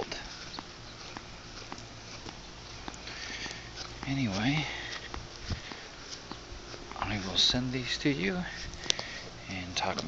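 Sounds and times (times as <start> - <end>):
footsteps on grass: 0.0 - 10.0
outdoor background noise: 0.0 - 10.0.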